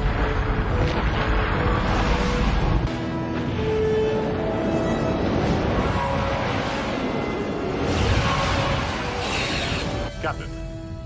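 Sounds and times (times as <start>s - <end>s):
explosions: 0.0s - 3.7s, 4.5s - 10.1s
faint orchestral music: 0.0s - 11.0s.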